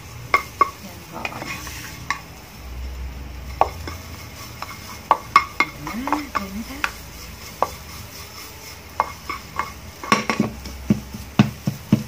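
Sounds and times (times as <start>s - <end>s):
spatula scraping a wok: 0.0s - 2.6s, 3.3s - 12.0s
light frying sizzle: 0.0s - 12.0s.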